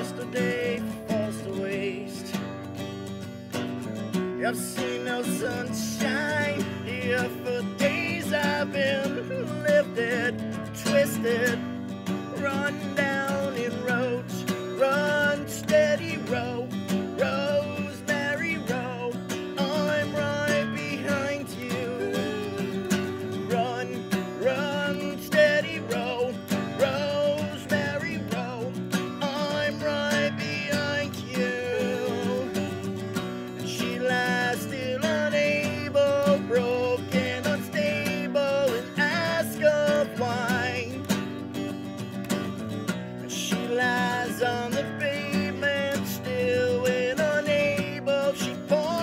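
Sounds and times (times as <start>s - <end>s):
acoustic guitar folk-country music: 0.0s - 49.0s.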